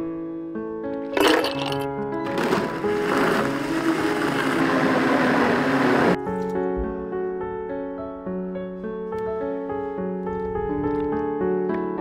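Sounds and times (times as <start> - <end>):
blender crushing ice: 1.1 - 6.2.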